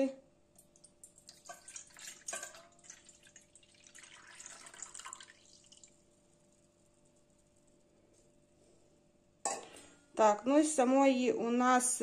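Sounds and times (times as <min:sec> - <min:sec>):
liquid pouring into metal bowl: 0:00.6 - 0:07.7.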